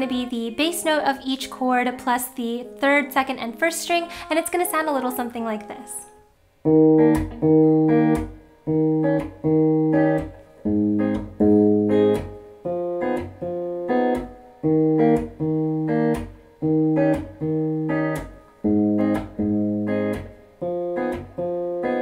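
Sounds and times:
clean electric guitar arpeggio: 6.7s - 22.0s.

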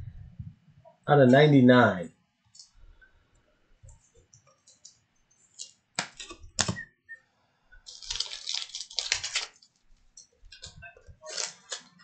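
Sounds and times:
crackling plastic rustle: 7.9s - 12.0s.

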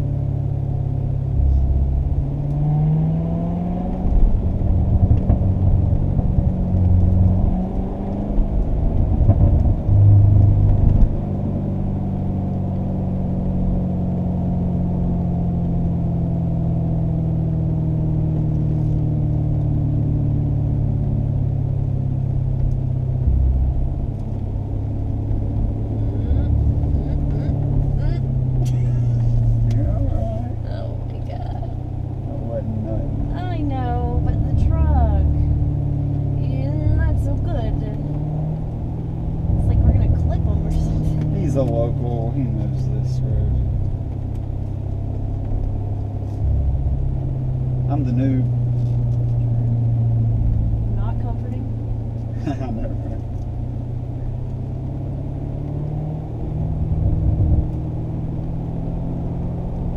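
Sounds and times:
car engine revving: 0.0s - 59.9s.

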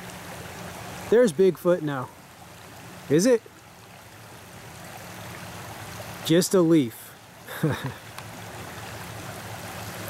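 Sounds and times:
creek water running: 0.0s - 10.0s.

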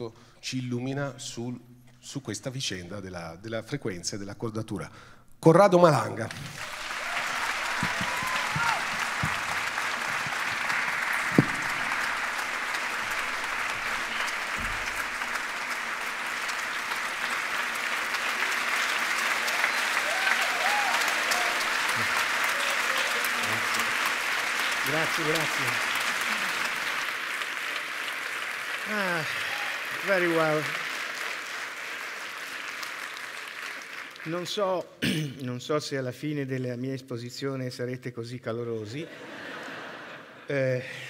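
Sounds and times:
audience applauding: 6.2s - 34.6s
sharp knock: 11.3s - 12.0s.

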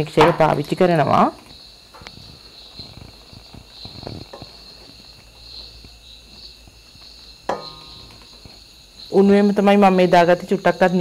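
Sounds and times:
knock on metal bowl: 7.5s - 8.2s.

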